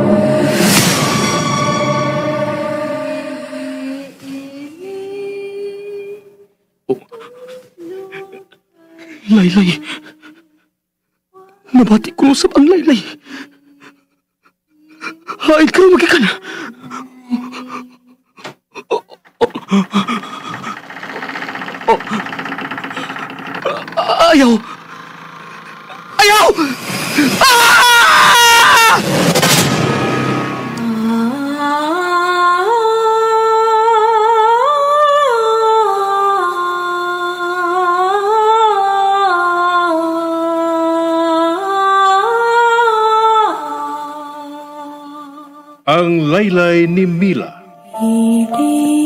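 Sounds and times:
person humming a lullaby: 2.7 - 10.6, 14.7 - 15.4, 16.2 - 20.8, 47.9 - 49.0
motor vehicle engine running: 19.5 - 27.4.

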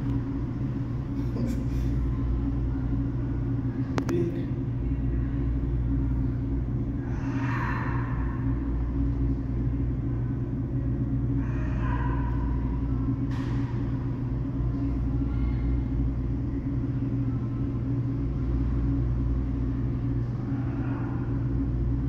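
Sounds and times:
low machine hum: 0.0 - 22.0.

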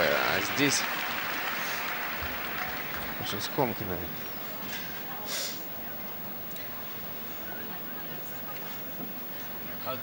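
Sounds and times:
audience applauding: 0.0 - 4.2.

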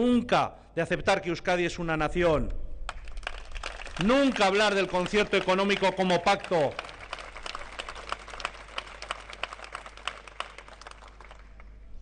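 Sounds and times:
audience applauding: 2.9 - 11.7.

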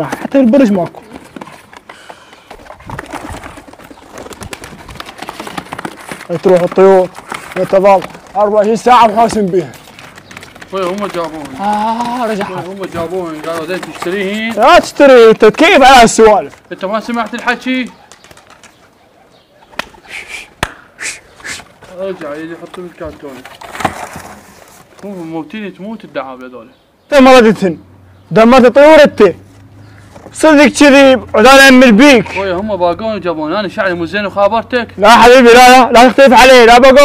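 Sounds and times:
pigeons cooing: 16.6 - 23.2.

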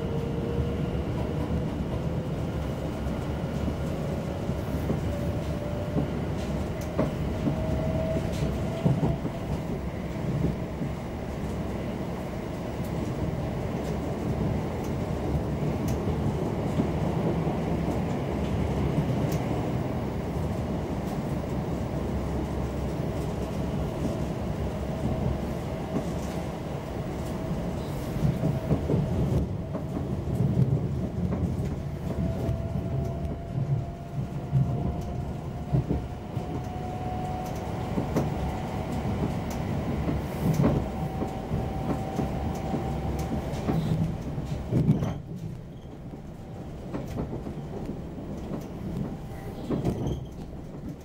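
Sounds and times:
train wheels rumbling on rail: 0.0 - 51.0.

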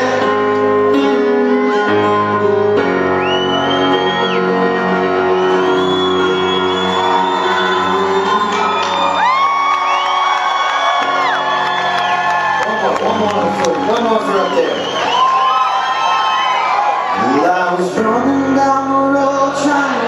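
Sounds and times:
held keyboard chord: 0.0 - 13.5
crowd cheering and whistling: 1.5 - 18.0.

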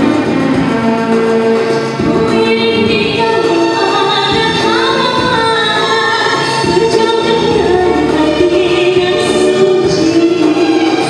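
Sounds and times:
musical accompaniment: 0.0 - 11.0
woman singing into a microphone: 0.0 - 11.0.

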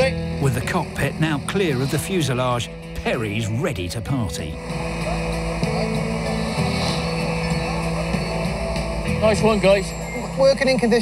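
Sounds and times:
background music: 0.0 - 11.0
crane engine running: 0.0 - 11.0.

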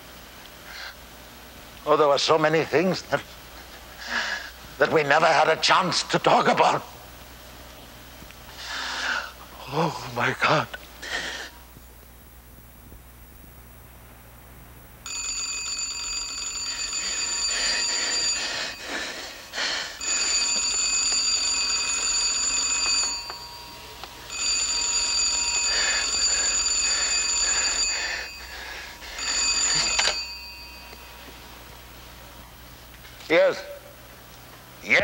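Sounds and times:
telephone bell ringing: 15.1 - 31.6.

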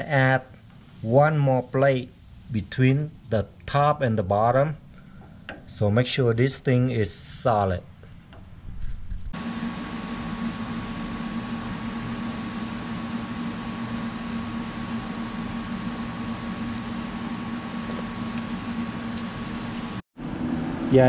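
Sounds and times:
low hum: 7.9 - 21.0.

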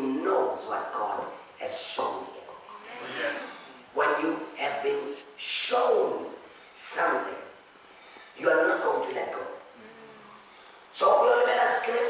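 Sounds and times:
man preaching into microphone: 0.0 - 7.6, 8.4 - 9.6, 10.9 - 12.0.

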